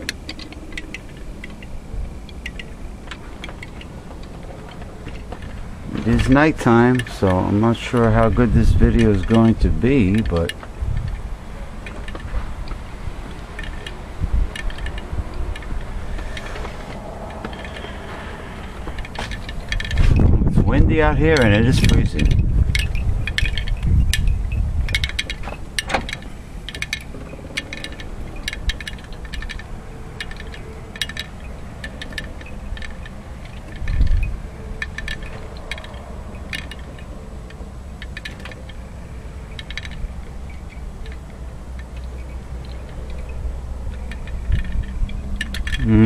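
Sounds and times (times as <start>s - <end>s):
wind buffeting microphone: 0.0s - 46.0s.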